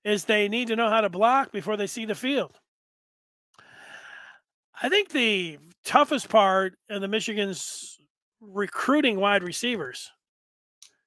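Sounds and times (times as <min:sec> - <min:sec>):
man speaking: 0:00.0 - 0:02.6, 0:04.8 - 0:10.2
man breathing into microphone: 0:03.6 - 0:04.4.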